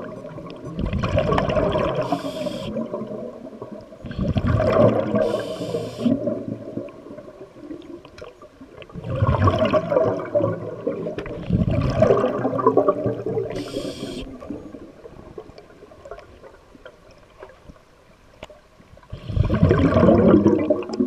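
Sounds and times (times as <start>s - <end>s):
exhaled bubbles gurgling underwater: 0.0s - 17.9s, 18.6s - 21.0s
regulator inhale hiss: 2.0s - 2.7s, 5.2s - 6.2s, 13.5s - 14.4s.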